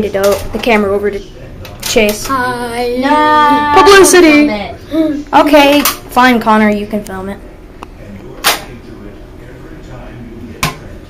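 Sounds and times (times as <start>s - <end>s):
quiet room noise: 0.0s - 11.0s.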